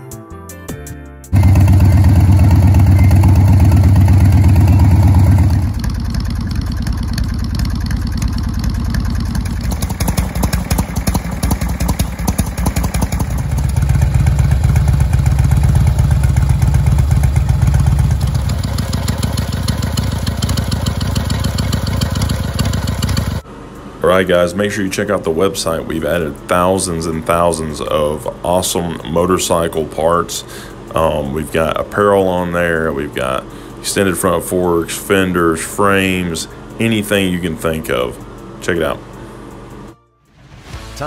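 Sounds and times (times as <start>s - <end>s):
motorcycle engine running: 1.3s - 23.5s.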